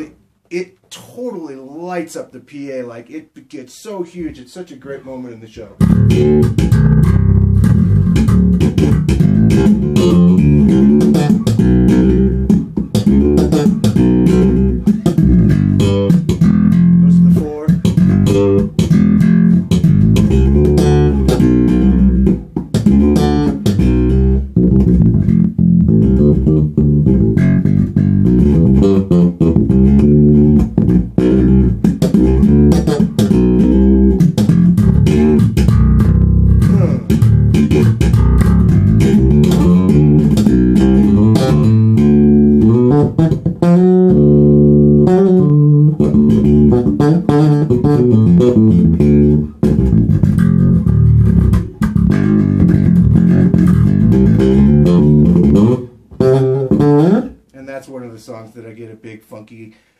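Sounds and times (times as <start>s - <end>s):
funk electric bass line: 5.5s - 57.5s.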